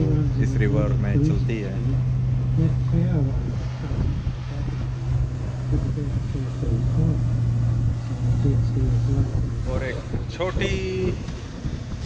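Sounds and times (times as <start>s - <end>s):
boat engine drone: 0.0s - 12.0s.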